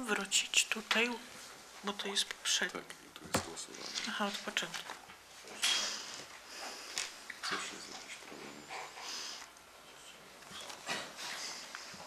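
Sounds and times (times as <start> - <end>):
rustling and handling sounds: 0.7 - 12.0.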